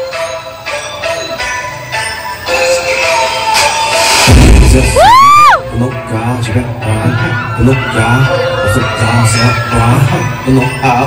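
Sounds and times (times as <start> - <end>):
dance mix music: 2.6 - 11.0
deep bass hit: 4.3 - 5.1.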